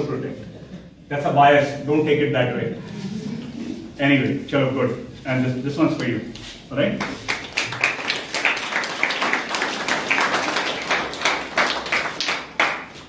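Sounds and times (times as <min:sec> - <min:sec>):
people clapping: 0:07.0 - 0:13.0.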